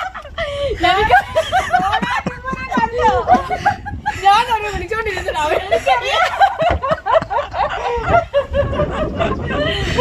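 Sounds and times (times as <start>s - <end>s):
women laughing and giggling: 0.0s - 10.0s.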